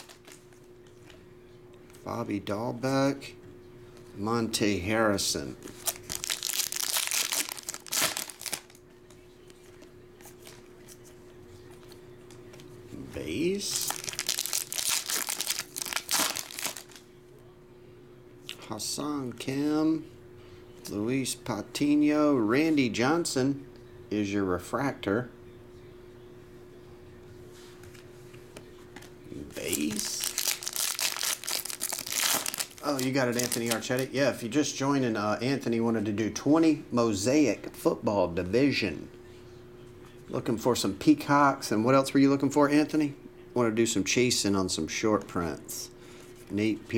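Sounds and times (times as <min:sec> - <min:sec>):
foil wrapper tearing and crinkling: 0:00.0 - 0:00.4, 0:05.7 - 0:08.8, 0:13.7 - 0:17.0, 0:29.6 - 0:34.1
faint handling of cards: 0:00.0 - 0:02.1, 0:05.4 - 0:17.1, 0:27.5 - 0:34.2.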